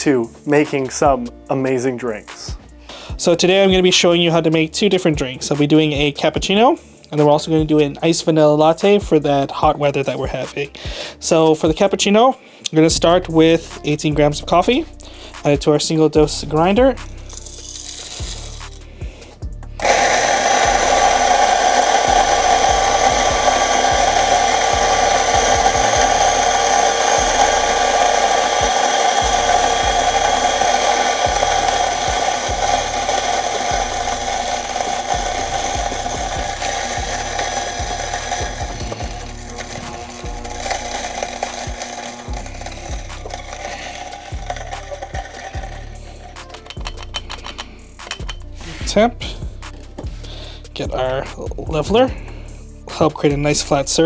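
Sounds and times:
coffee grinder motor whine: 19.8s - 48.4s.

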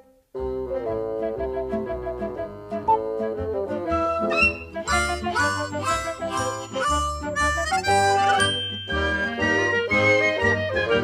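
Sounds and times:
background music with steady beat: 0.1s - 11.0s.

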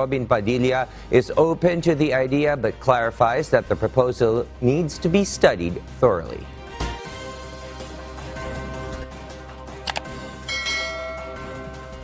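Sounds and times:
background music: 0.0s - 12.0s
bright bell chime: 10.5s - 11.7s.

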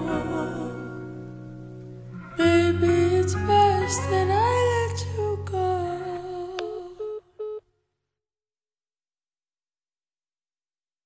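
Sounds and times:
call-ended beeps: 7.0s - 7.6s.

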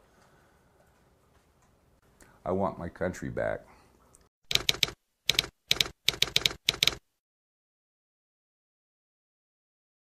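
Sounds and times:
keyboard keystroke clicks: 4.5s - 7.0s.

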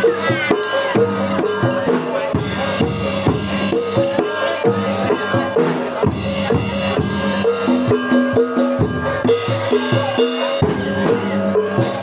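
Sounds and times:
drum strokes: 0.0s - 12.0s.

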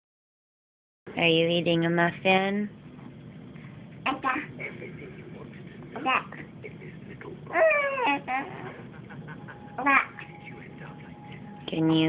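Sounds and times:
baby whining: 7.5s - 8.8s.

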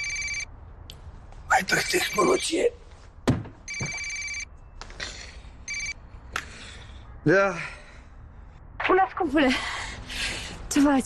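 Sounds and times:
telephone ringing: 0.0s - 0.5s, 3.7s - 4.6s, 5.7s - 6.0s.

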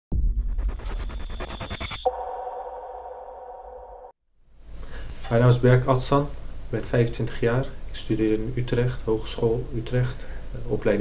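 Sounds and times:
sharp electronic hit: 0.1s - 4.1s
held synthesized chord: 2.1s - 4.1s.

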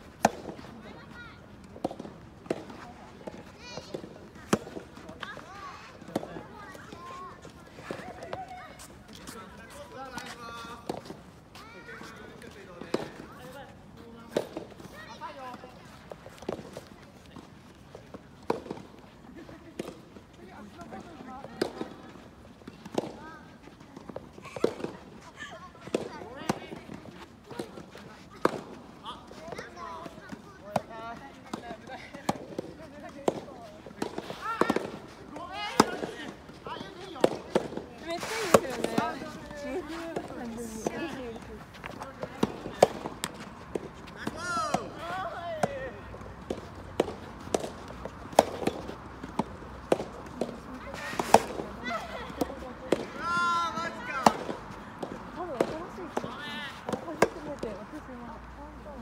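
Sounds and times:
players chatting: 0.2s - 59.0s
rackets striking ball: 32.2s - 35.0s, 35.7s - 37.8s, 40.2s - 57.8s
players calling: 50.7s - 57.9s.

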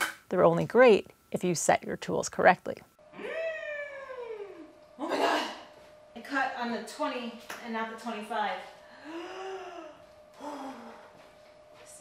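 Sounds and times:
person wailing: 3.2s - 5.6s.

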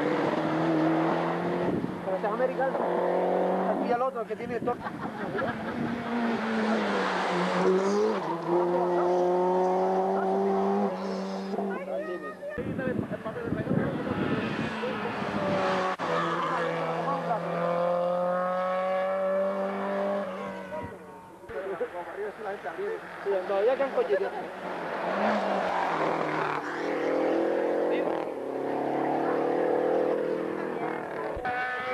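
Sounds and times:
rally car engine accelerating: 0.0s - 3.9s, 5.3s - 11.8s, 13.9s - 20.8s, 24.7s - 31.9s.

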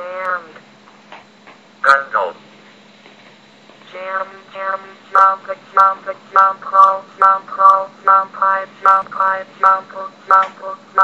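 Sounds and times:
synthetic text-to-speech voice: 3.9s - 11.0s.

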